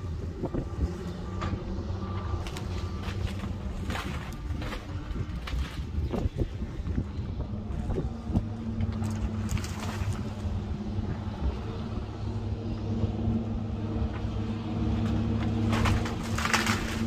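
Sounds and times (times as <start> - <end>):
heavy diesel engines running: 0.0 - 17.0.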